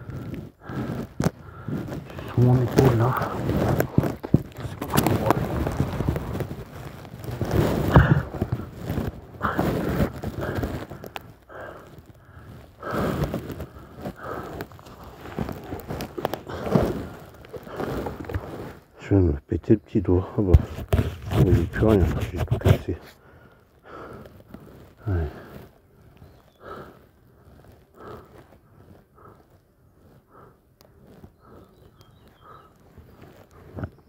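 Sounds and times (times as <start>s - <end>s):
man breathing hard and groaning: 0.0s - 6.5s, 7.4s - 18.8s, 23.0s - 33.9s
footsteps: 0.0s - 18.8s.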